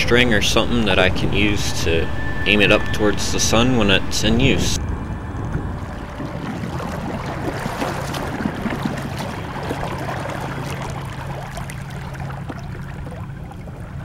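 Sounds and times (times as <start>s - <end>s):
steady low hum: 0.0s - 14.0s
water rushing along boat hull: 0.0s - 14.0s
small splashes: 5.8s - 14.0s.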